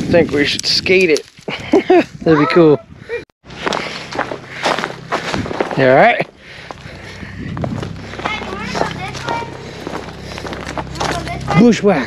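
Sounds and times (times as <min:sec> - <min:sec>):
footsteps on dry leaves: 0:03.4 - 0:12.0.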